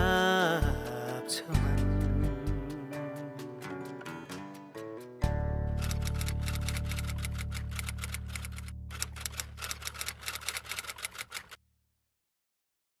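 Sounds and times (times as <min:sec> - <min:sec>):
typewriter keys clacking: 0:05.8 - 0:11.6.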